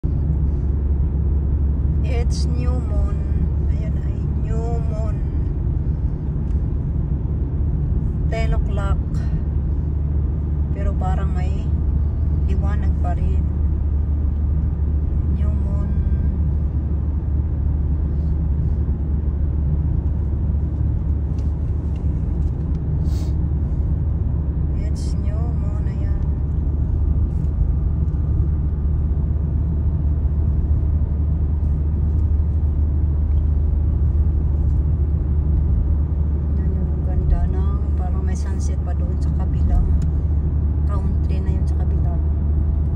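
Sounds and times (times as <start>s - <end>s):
car engine and tyres rumbling: 0.0s - 42.9s.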